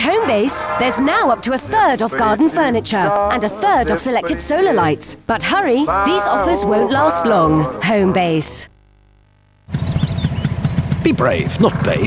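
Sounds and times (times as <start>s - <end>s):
car engine throbbing: 9.7s - 12.0s.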